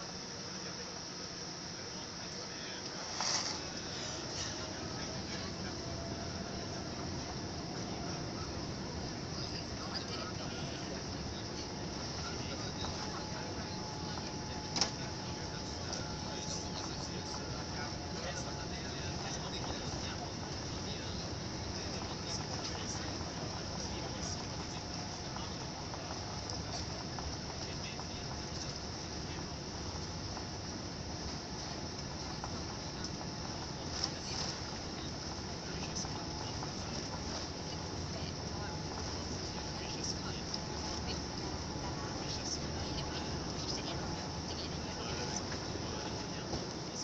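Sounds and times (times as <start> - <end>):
airliner cabin engine rumble: 0.0 - 47.0.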